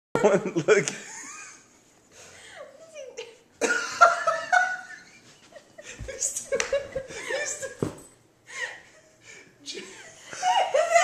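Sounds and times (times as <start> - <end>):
person laughing: 3.6 - 7.9.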